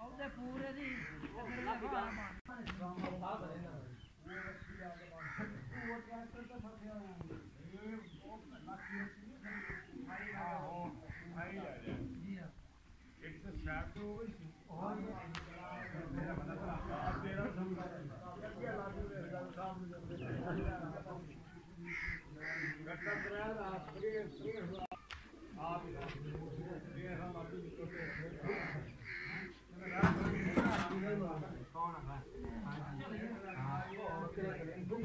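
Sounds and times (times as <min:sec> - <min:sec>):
people talking: 0:00.0 - 0:12.6, 0:13.2 - 0:35.0
harsh bird calls: 0:03.9 - 0:06.6, 0:07.6 - 0:11.5, 0:21.4 - 0:25.6, 0:27.2 - 0:30.8.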